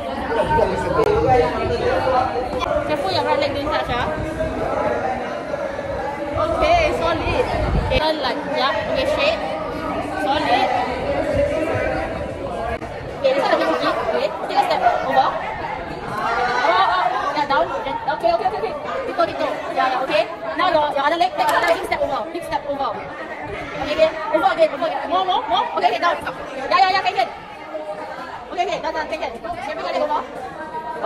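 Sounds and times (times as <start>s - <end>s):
young people chattering: 0.0s - 31.0s.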